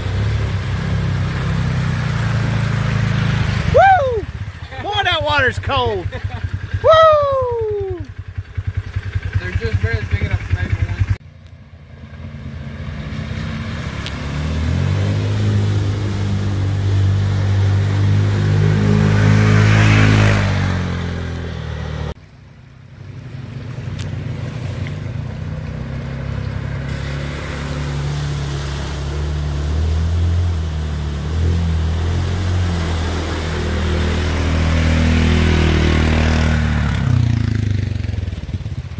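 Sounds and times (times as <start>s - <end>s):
water splashing under tyres: 0.0s - 7.4s, 8.0s - 38.9s
utility vehicle engine running: 0.0s - 38.9s.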